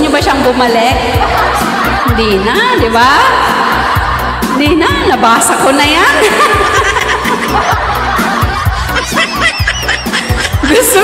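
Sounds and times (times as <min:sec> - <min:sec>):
background music: 0:00.0 - 0:11.0
woman laughing into a microphone: 0:06.0 - 0:11.0.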